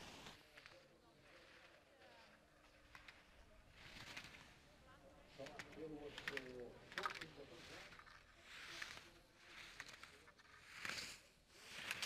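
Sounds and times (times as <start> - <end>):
skis scraping on snow: 0.0 - 12.0.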